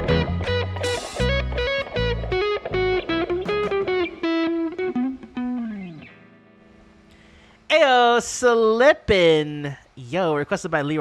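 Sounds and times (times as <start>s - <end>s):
bass line: 0.0s - 4.1s
electric guitar lead line: 0.0s - 7.6s.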